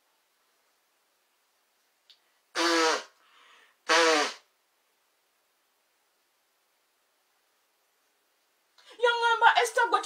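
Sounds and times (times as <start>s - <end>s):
short breath: 3.2s - 3.9s.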